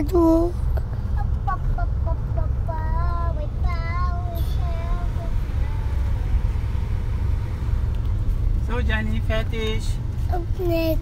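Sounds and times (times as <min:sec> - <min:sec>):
car cabin rumble: 0:00.0 - 0:11.0
child singing: 0:01.4 - 0:06.0.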